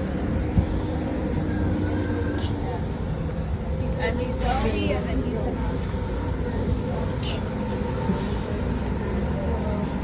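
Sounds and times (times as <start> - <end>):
school buses idling: 0.0 - 10.0.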